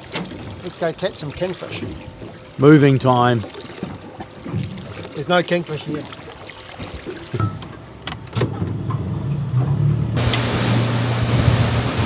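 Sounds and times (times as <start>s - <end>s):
rush of water spray and wind: 0.0s - 7.8s, 10.2s - 12.0s
boat motor droning: 0.0s - 12.0s.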